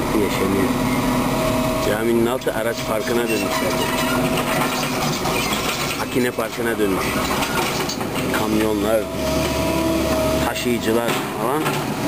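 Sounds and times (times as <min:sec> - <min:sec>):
excavator rattling and clattering: 0:02.0 - 0:12.0.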